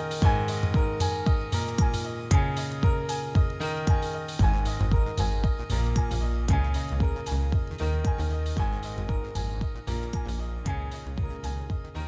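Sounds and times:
electronic music with kick drum: 0.0 - 12.0.

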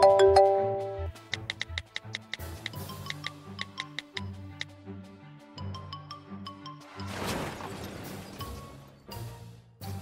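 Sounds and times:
quick light ticking beat: 1.1 - 4.8.

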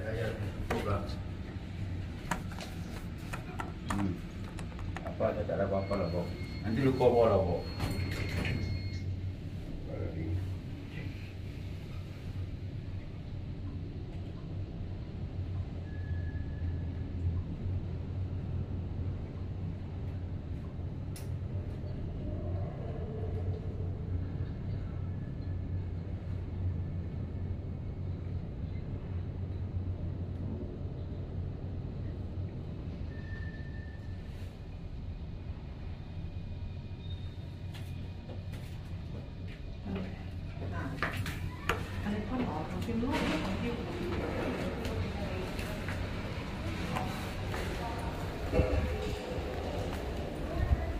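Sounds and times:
elevator hum and rumble: 0.0 - 50.9.

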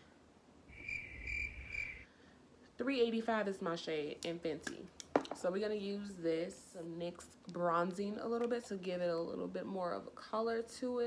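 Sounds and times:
high chirping tone: 0.7 - 2.0.

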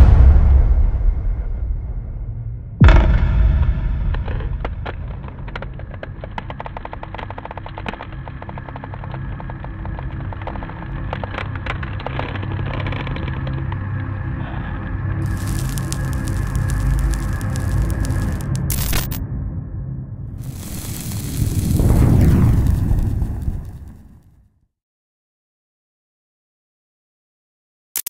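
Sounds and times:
low rumble: 0.0 - 7.6, 15.2 - 24.3
dark horror-style music: 0.0 - 23.2
crackles and clicks: 4.2 - 13.6, 15.2 - 19.2, 20.4 - 24.3
loud rush of noise: 15.2 - 19.2, 20.3 - 24.2.

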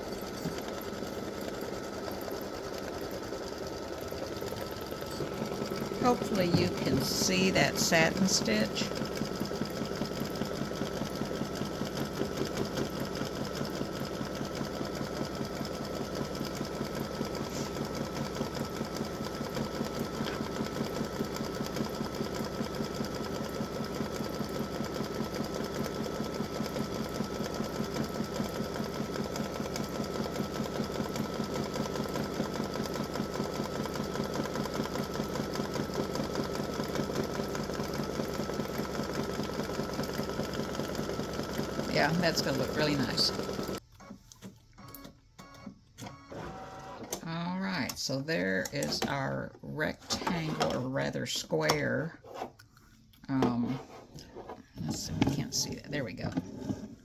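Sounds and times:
embroidery machine stitching: 0.0 - 43.8, 44.5 - 51.2.

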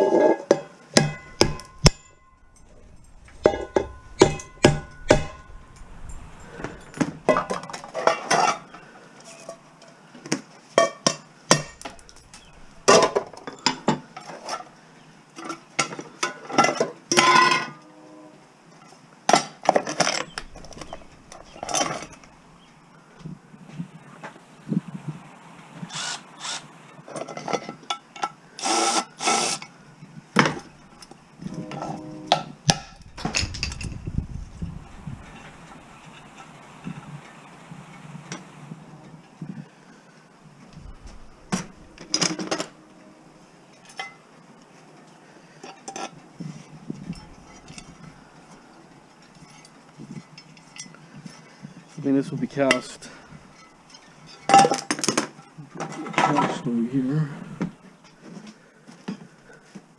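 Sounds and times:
metal clanks: 0.0 - 9.7, 10.8 - 14.7, 19.3 - 22.8, 30.4 - 37.0, 40.7 - 43.0, 46.9 - 51.4
hammer striking metal pots: 0.4 - 2.7, 3.3 - 8.6, 10.8 - 14.0.

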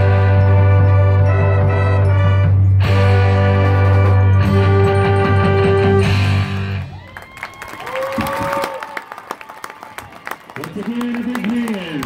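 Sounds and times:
people cheering: 6.7 - 12.0
audience applause: 6.8 - 12.0.

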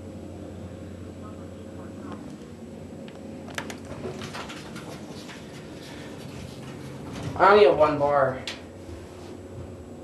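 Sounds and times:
elevator car humming: 0.0 - 10.0.

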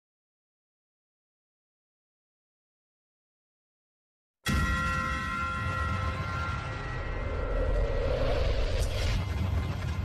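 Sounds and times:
steady high tones: 4.5 - 9.9
low rumbling drone: 5.4 - 10.0
noisy swell: 6.3 - 10.0.

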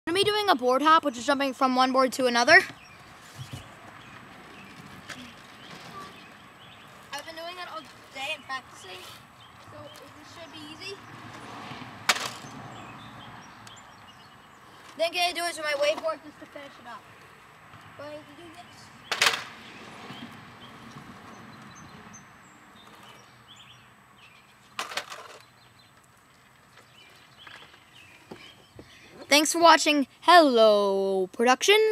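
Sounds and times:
small wheels rolling on asphalt: 0.8 - 29.8.

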